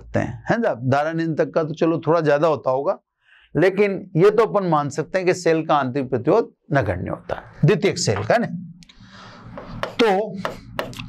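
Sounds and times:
marker scratching on glass board: 0:09.4 - 0:11.0.

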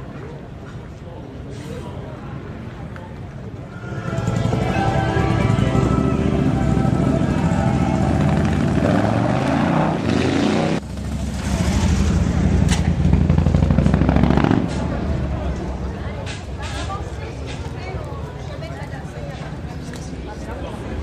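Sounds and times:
motorcycle engines revving: 0:03.8 - 0:17.0.

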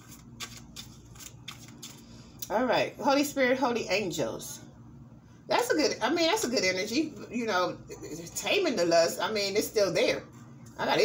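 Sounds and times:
cards shuffling: 0:00.0 - 0:02.0.

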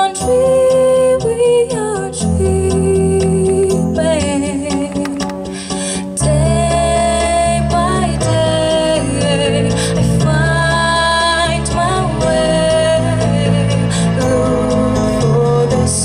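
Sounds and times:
girl singing into a microphone: 0:00.0 - 0:05.0, 0:06.2 - 0:16.0
backing track: 0:00.0 - 0:16.0.

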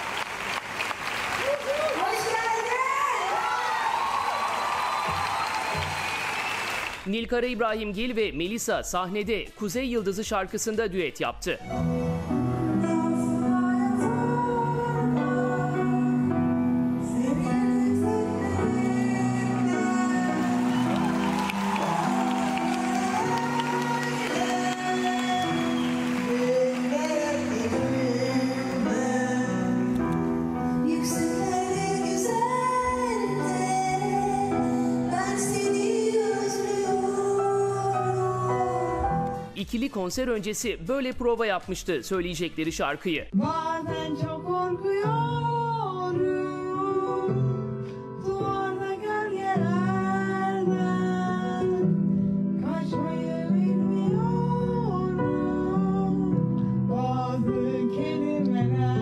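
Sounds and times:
light instrumental accompaniment: 0:11.4 - 0:39.8
women singing a duet: 0:12.6 - 0:16.4, 0:17.0 - 0:30.0, 0:30.7 - 0:39.3, 0:43.4 - 0:47.6, 0:48.2 - 0:52.0, 0:52.6 - 0:59.0.

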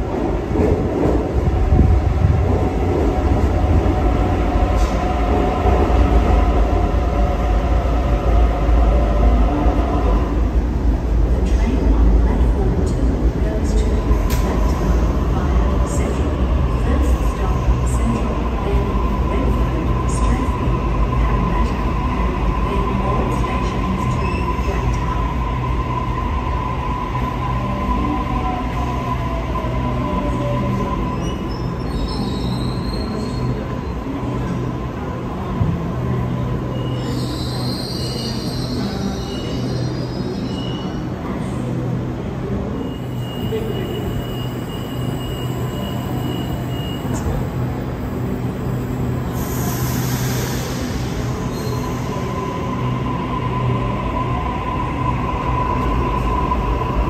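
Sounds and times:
train rumble: 0:00.0 - 0:57.0.

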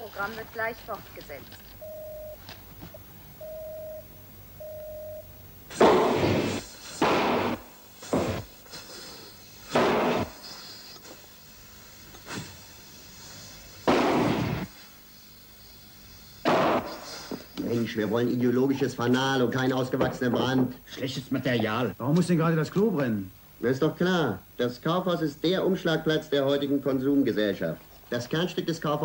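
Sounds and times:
short beeps: 0:01.8 - 0:02.4, 0:03.4 - 0:05.5
small explosions: 0:05.7 - 0:08.5, 0:09.7 - 0:10.4, 0:13.9 - 0:14.7.

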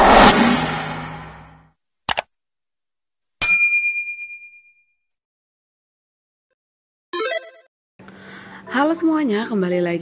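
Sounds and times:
bright bell ding: 0:03.4 - 0:04.8.

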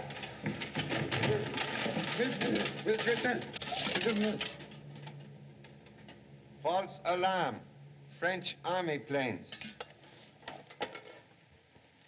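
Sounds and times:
crackling and rustling: 0:00.0 - 0:06.2.

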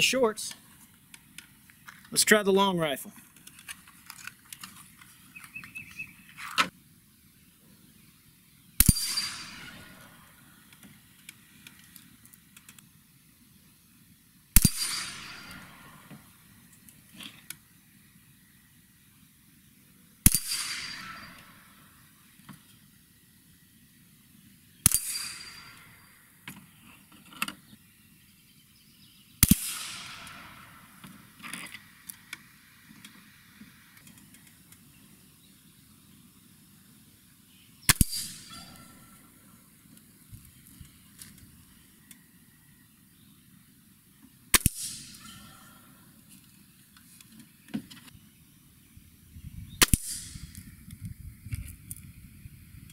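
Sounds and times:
rifle shots with echo: 0:08.8 - 0:10.4, 0:14.6 - 0:16.1, 0:20.2 - 0:21.8, 0:24.8 - 0:26.1, 0:29.4 - 0:31.0, 0:37.9 - 0:39.1.

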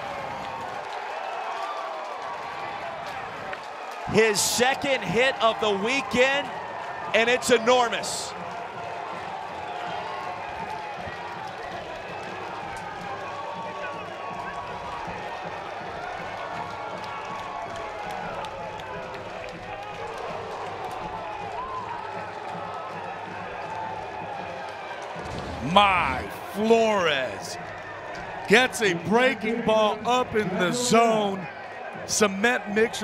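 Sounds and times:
crowd shouting and cheering: 0:00.0 - 0:33.0.

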